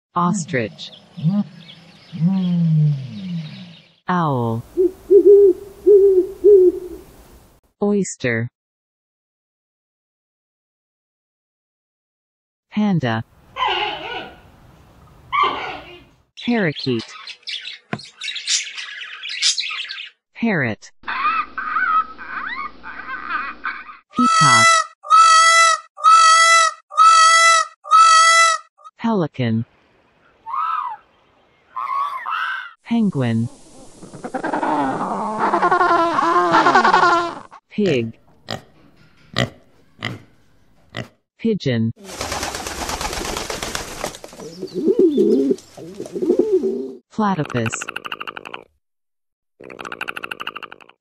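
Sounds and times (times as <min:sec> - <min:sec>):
peacock calling: 0:04.8 - 0:07.0, 0:21.1 - 0:28.6, 0:30.2 - 0:32.8.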